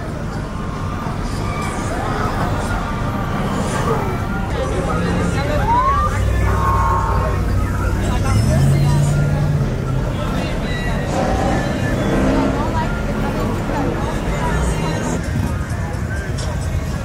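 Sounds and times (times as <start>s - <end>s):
car engines humming: 0.0s - 17.0s
crowd voices: 0.0s - 17.0s.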